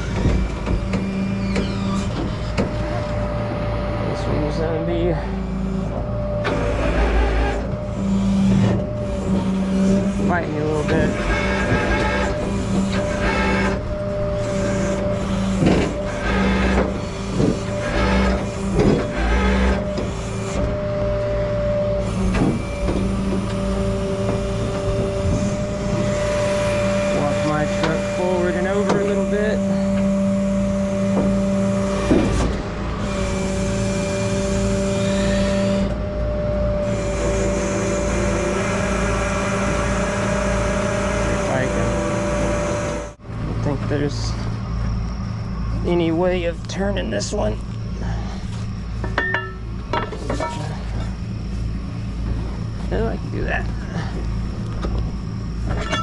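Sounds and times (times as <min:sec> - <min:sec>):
diesel engine humming: 0:00.0 - 0:56.0
metal knocks and clanks: 0:15.0 - 0:20.7, 0:49.0 - 0:51.1.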